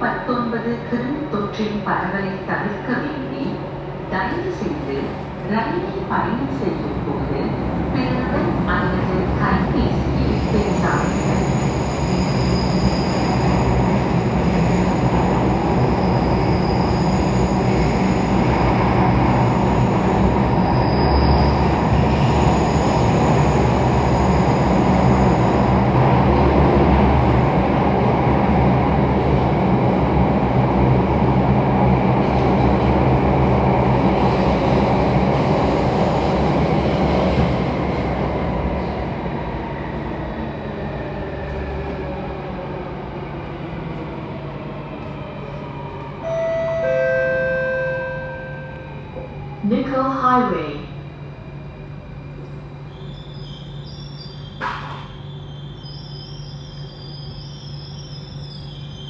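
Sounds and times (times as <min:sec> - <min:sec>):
metro train rumbling at speed: 0:00.0 - 0:59.0
train braking: 0:09.6 - 0:25.8, 0:46.2 - 0:50.5, 0:52.8 - 0:59.0
two-note falling chime: 0:46.3 - 0:49.0.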